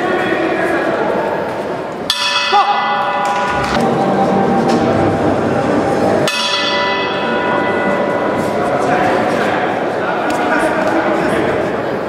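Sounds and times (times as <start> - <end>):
murmur of crowd: 0.0 - 12.0
boxing ring bell ringing: 2.1 - 3.8.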